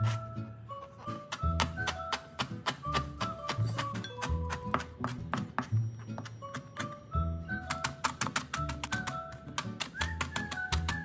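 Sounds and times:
background music: 0:00.0 - 0:11.0
cleaver chopping on cutting board: 0:01.3 - 0:05.7.

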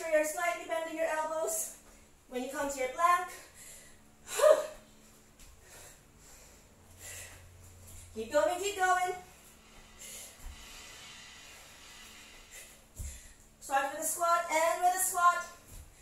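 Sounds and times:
woman's effortful gliding vocal sounds: 0:04.2 - 0:04.9.

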